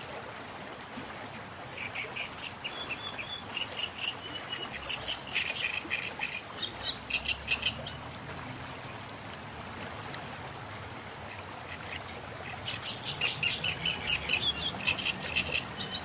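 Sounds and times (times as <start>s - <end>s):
birds chirping: 1.6s - 9.2s, 11.3s - 16.0s.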